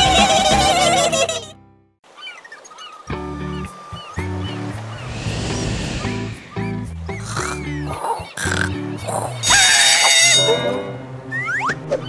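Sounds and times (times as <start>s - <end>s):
cartoon background music: 0.0s - 1.6s, 6.4s - 12.0s.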